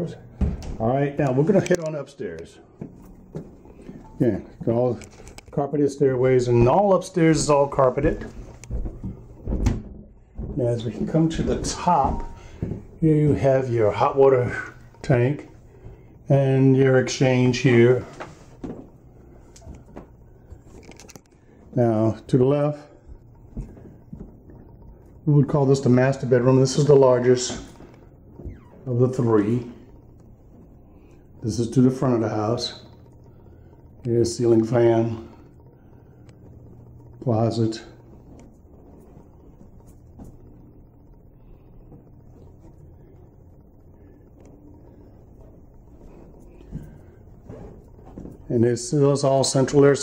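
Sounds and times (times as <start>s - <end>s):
low steady hum: 0.0s - 50.0s.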